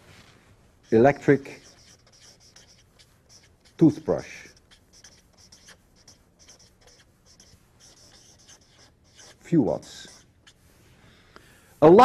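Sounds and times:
chalk scratching on blackboard: 0.8s - 10.9s.

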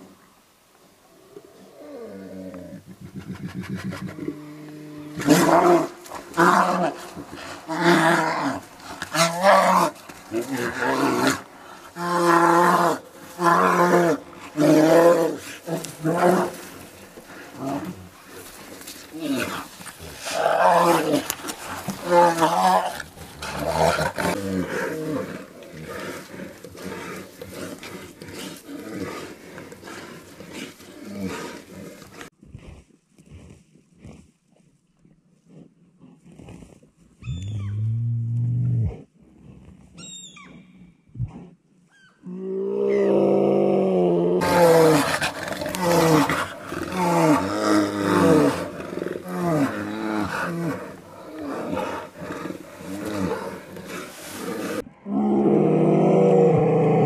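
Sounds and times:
bears growling and roaring: 1.2s - 32.3s, 42.2s - 57.0s.

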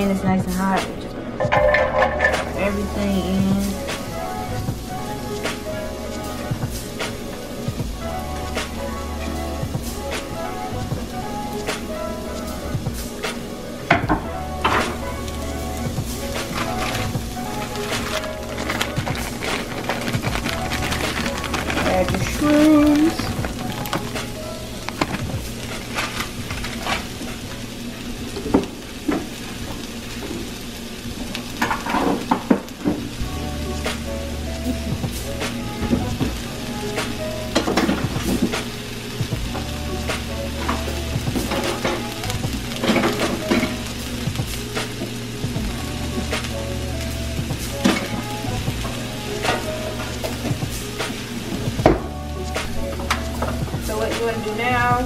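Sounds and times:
background music: 0.0s - 55.0s
vegetables sizzling in oil: 1.4s - 55.0s.

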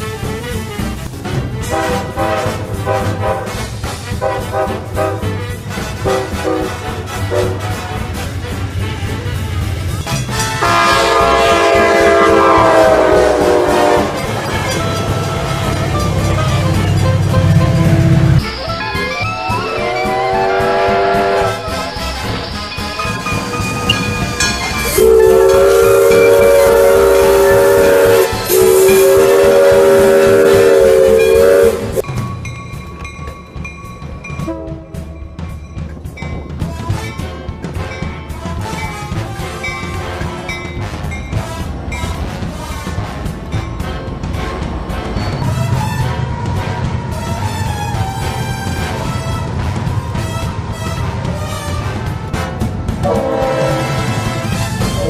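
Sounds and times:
train air horn chord: 0.0s - 18.6s, 19.5s - 32.0s, 36.7s - 55.0s
music: 0.0s - 55.0s
steam locomotive chime whistle: 1.6s - 8.3s, 9.4s - 43.8s, 44.5s - 52.1s, 53.0s - 55.0s.

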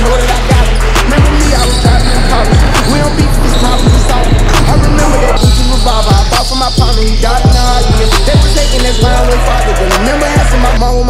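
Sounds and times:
deep bass kicks: 0.0s - 9.3s
hip hop beat: 0.0s - 11.0s.

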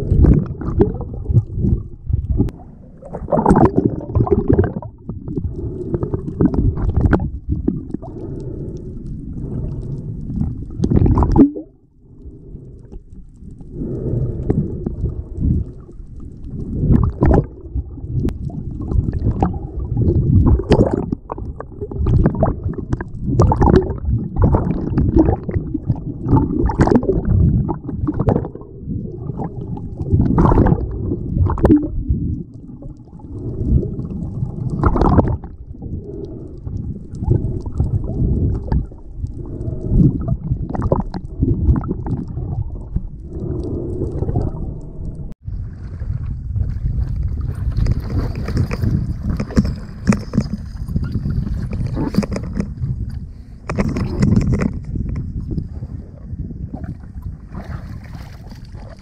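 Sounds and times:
water sloshing and splashing: 0.0s - 8.7s, 9.5s - 12.2s, 13.1s - 59.0s
underwater rumbling and gurgling: 0.0s - 59.0s.

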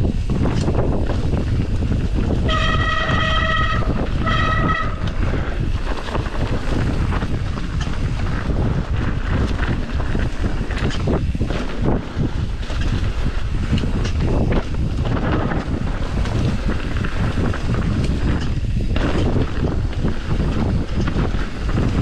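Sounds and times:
bike rolling on dirt trail: 0.0s - 22.0s
wind buffeting microphone: 0.0s - 22.0s.

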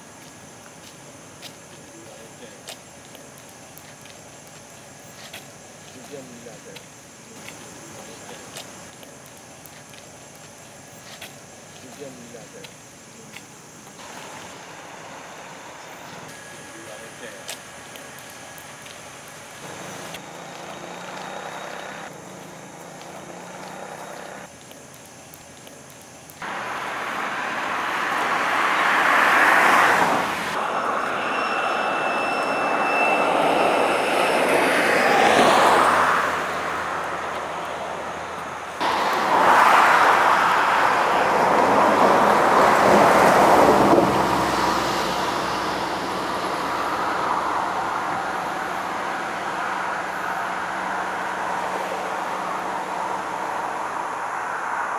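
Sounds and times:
cars passing: 14.0s - 24.5s, 26.4s - 54.9s.

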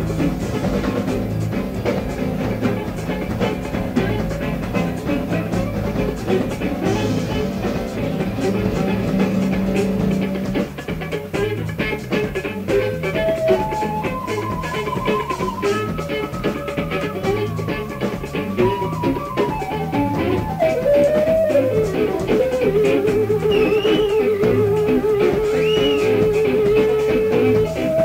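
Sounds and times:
drums busy beat: 0.0s - 28.0s
rock band playing live: 0.0s - 28.0s
climbing melody: 13.0s - 25.6s.

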